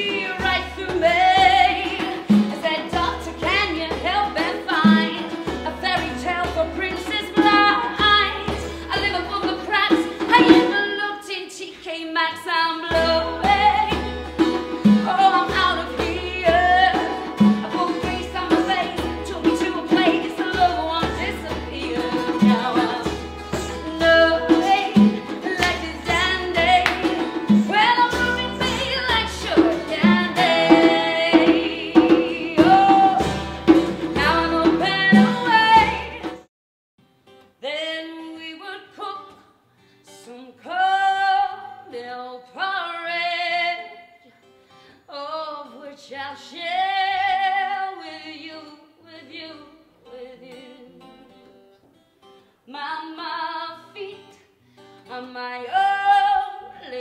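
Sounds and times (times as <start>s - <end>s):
guitar-led band playing: 0.0s - 11.0s, 12.8s - 36.5s
woman singing: 0.0s - 36.5s, 37.6s - 44.4s, 45.0s - 51.6s, 52.7s - 57.0s.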